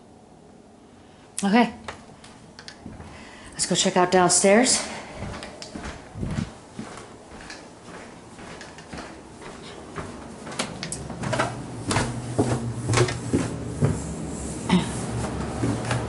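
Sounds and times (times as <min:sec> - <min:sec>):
low steady hum: 0:00.0 - 0:16.0
footsteps on stairs: 0:01.8 - 0:14.2, 0:15.0 - 0:16.0.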